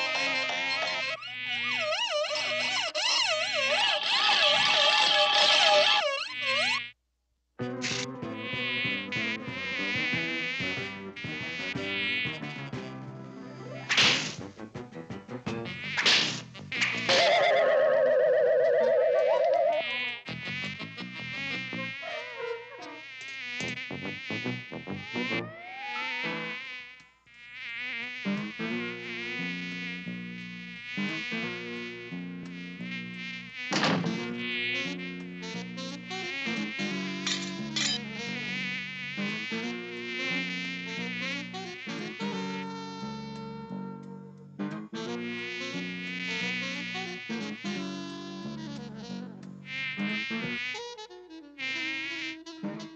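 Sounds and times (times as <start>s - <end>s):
cartoon fly buzzing: 0.0s - 7.0s, 7.7s - 14.5s, 15.6s - 44.1s, 44.8s - 52.9s
sharp hits: 13.9s - 14.5s.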